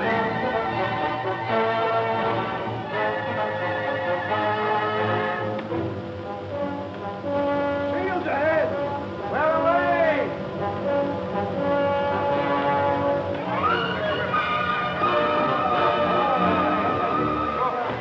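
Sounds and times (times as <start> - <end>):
orchestral music with brass chords: 0.0 - 18.0
man's voice calling out: 7.9 - 10.4.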